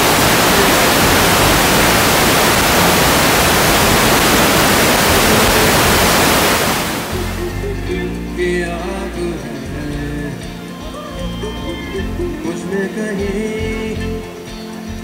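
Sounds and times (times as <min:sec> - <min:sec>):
rushing hiss: 0:00.0 - 0:07.8
band playing: 0:00.0 - 0:15.0.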